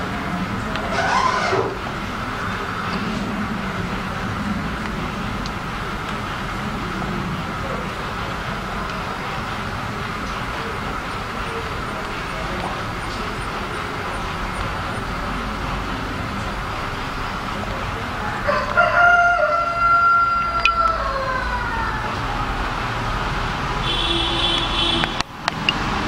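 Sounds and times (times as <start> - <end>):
steady background noise: 0.0 - 26.0.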